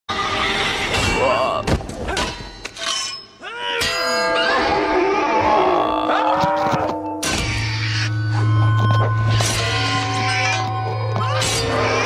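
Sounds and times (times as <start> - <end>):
pitch-bending vocal cry: 3.4 - 8.5.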